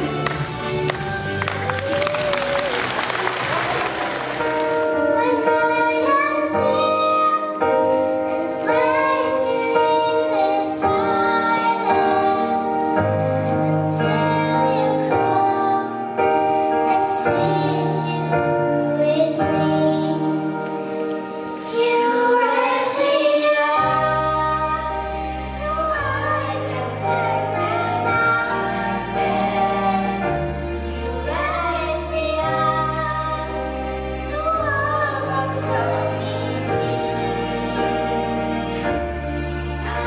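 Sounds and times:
sustained instrumental accompaniment: 0.0 - 40.0
applause: 0.1 - 5.0
child singing slow melody: 4.8 - 38.4.

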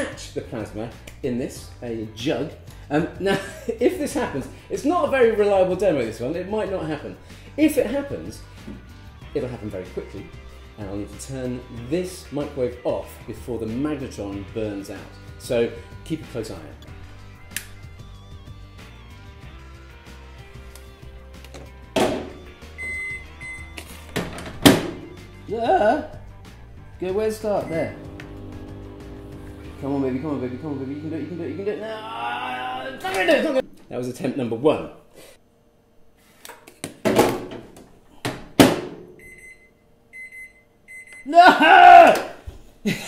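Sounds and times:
background music: 0.0 - 33.8
microwave keypad beeps: 22.8 - 23.8, 27.6 - 28.0, 39.2 - 41.3.

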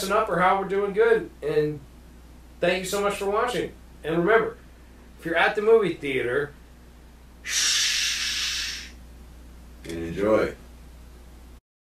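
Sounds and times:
man shushing: 7.4 - 9.0.

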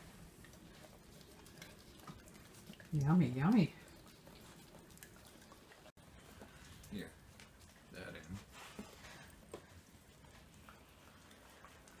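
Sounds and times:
dogs nibbling corn ticks: 0.0 - 12.0.

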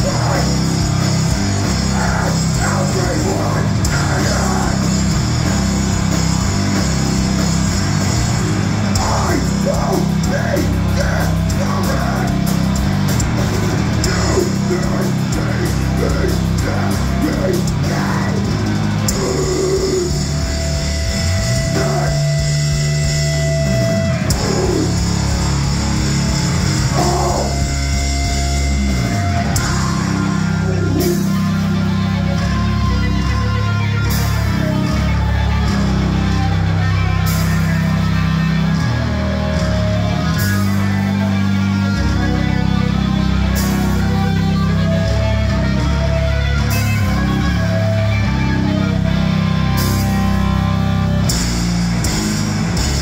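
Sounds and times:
death metal band playing: 0.0 - 53.0
distorted electric guitar and bass: 0.0 - 53.0
drum kit: 0.0 - 53.0.

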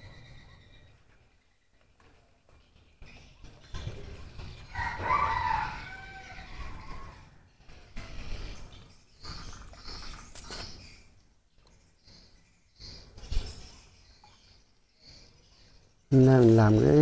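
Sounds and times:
rooster crowing: 4.7 - 7.3.

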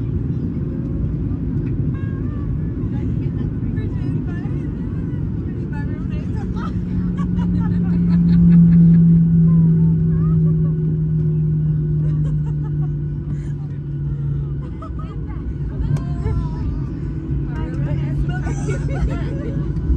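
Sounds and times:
engine and wheels rumble: 0.0 - 19.9
low falling hum: 0.0 - 19.9
passengers murmuring: 0.0 - 19.9.

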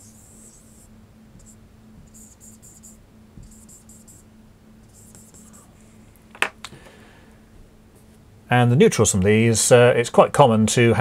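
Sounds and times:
marker scratching on whiteboard: 0.0 - 4.2, 4.8 - 5.7.

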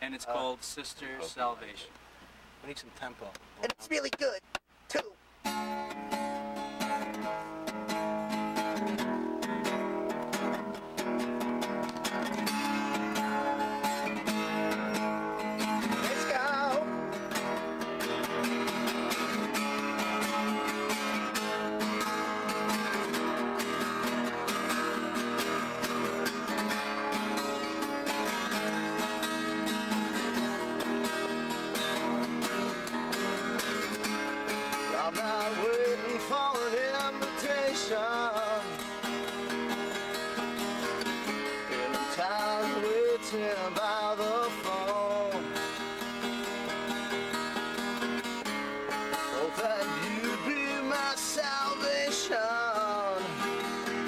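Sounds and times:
acoustic guitars strumming: 4.9 - 54.0.

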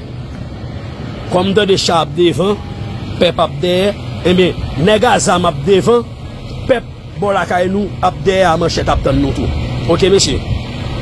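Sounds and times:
low background rumble: 0.0 - 11.0
man speaking: 1.3 - 10.5.

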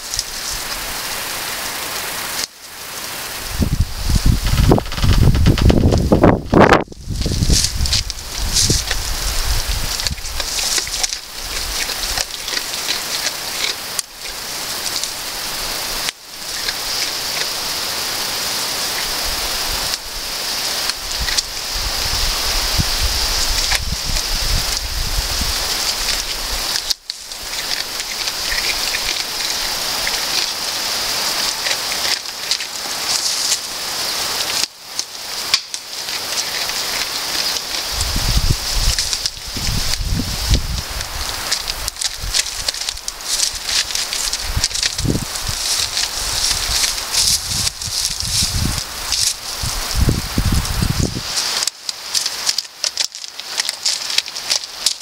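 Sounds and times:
steady high hiss: 0.0 - 55.0
goat tearing and chewing grass: 3.9 - 55.0.

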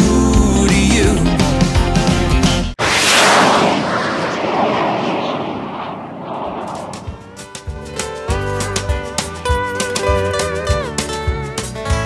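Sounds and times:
whoosh sound effect: 2.8 - 7.6.

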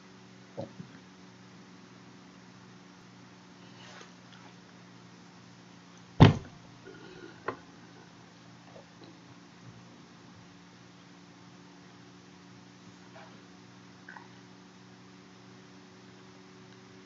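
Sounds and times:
loud thump: 6.2 - 6.6.

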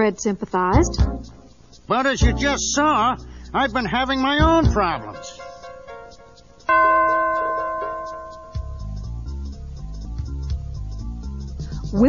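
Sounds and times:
bell chime ringing: 5.1 - 9.4.

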